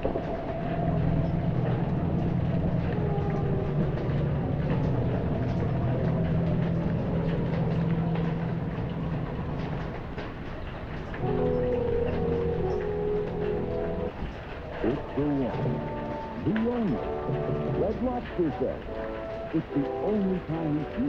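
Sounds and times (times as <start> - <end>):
distant thunder rumbling: 0.0 - 21.0
rain tapping on window: 0.0 - 21.0
television commercial music: 11.2 - 21.0.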